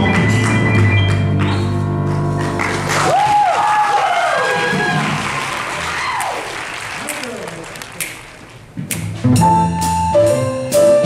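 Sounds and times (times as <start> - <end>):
audience applauding: 2.3 - 8.6
whooping cheers: 3.0 - 7.7.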